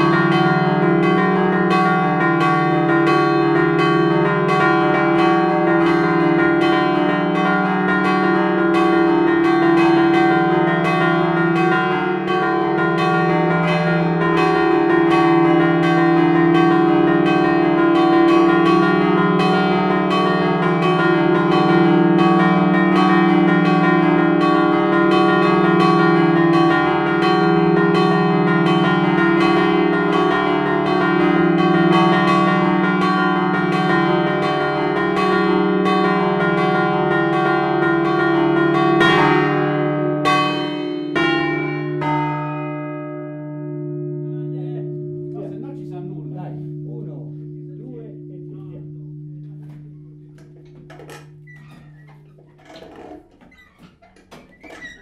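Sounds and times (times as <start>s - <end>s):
church bells pealing: 0.0s - 55.0s
low bell hum: 43.1s - 52.8s.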